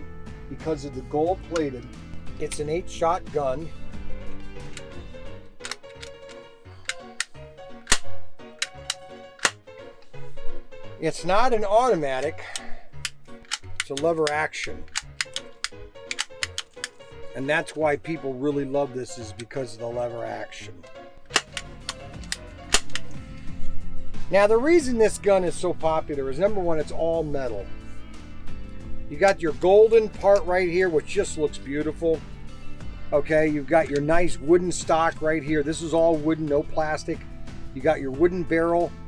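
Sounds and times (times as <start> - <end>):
background music: 0.0 - 39.0
toy rifle lever clicks and snaps: 5.6 - 9.6, 12.5 - 17.0, 21.3 - 23.2.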